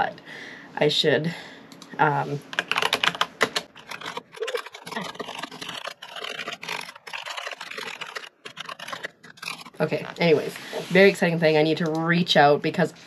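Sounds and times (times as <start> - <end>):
computer keyboard typing: 1.7 - 9.8.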